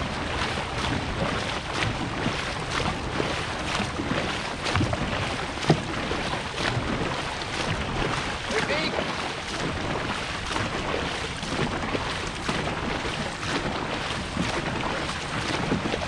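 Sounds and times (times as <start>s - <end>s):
paddles splashing through water: 0.0s - 16.0s
rushing water: 0.0s - 16.0s.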